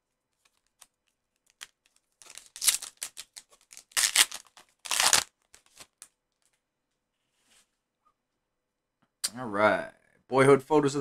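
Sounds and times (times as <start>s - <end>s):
foil wrapper crinkling: 0.4s - 6.1s
foil wrapper tearing: 1.5s - 6.1s.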